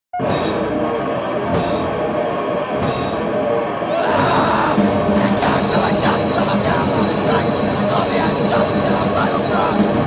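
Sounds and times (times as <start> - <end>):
rock band playing: 0.2 - 10.0.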